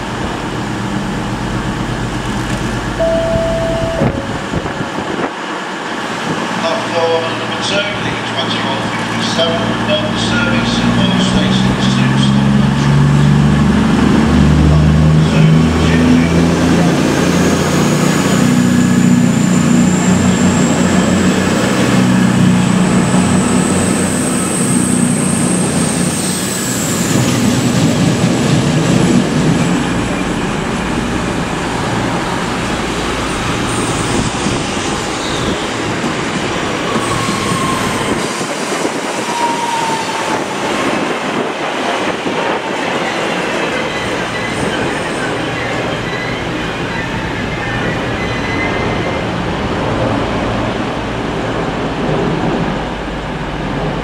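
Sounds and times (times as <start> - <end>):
diesel train passing: 0.0 - 54.0
rising high whine: 1.2 - 4.8
train wheels rumbling on rail: 3.9 - 54.0.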